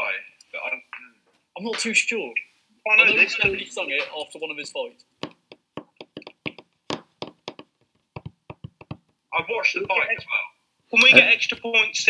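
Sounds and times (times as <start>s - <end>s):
quick sharp taps and clicks: 5.1s - 10.3s.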